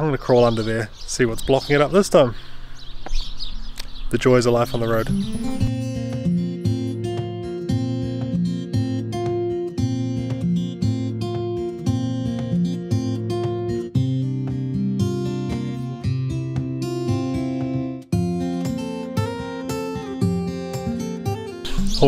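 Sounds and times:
acoustic guitar strumming: 0:04.7 - 0:22.0.

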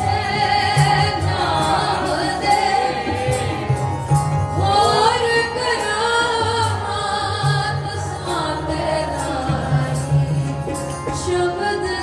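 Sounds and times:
voices singing a hymn: 0:00.0 - 0:10.8
harmonium: 0:00.0 - 0:12.0
tabla: 0:00.0 - 0:12.0.

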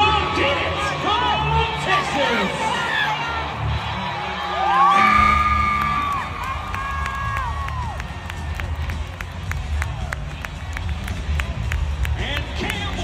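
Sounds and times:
crowd cheering and whooping: 0:02.6 - 0:10.6
long drawn-out whoops: 0:04.6 - 0:08.0.

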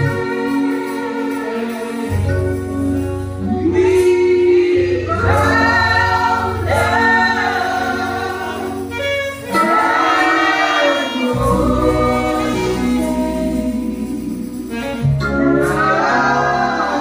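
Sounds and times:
gospel choir singing: 0:00.0 - 0:17.0.

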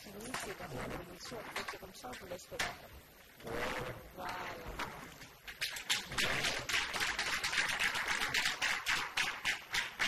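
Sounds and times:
audience applauding: 0:06.0 - 0:10.0.

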